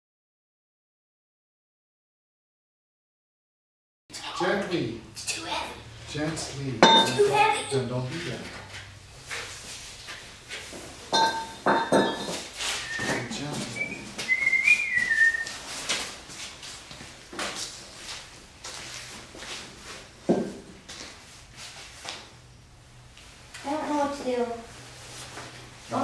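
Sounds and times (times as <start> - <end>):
ringing metal clank: 6.8 - 7.8, 11.2 - 12.4
weights knocking into buckets: 11.1 - 15.4
whistled notes: 12.7 - 15.6.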